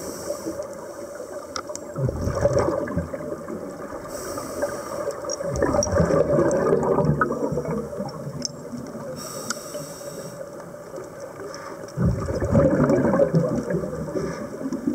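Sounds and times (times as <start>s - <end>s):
regulator hissing inhale: 0.0s - 1.6s, 4.0s - 5.3s, 9.2s - 10.6s, 14.1s - 14.6s
regulator bubbles gurgling: 1.7s - 9.4s, 10.4s - 14.9s.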